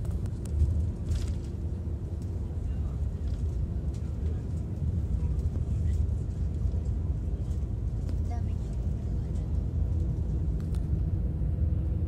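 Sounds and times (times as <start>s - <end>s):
bus engine and road noise: 0.0s - 12.0s.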